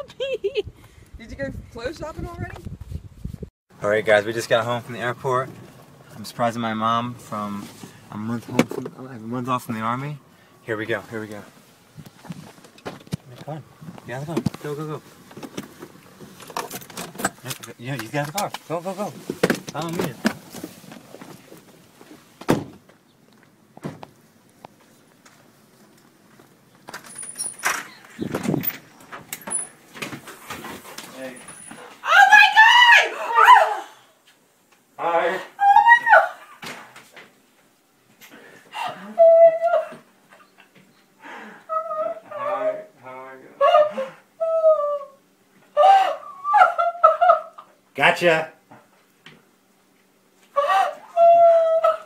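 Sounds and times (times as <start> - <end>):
woman crying and sobbing: 0.0 - 0.7, 38.7 - 40.0, 43.6 - 45.2, 45.8 - 47.6, 50.6 - 52.0
rustling and handling noise: 10.8 - 32.0
car door slamming: 22.4 - 22.8.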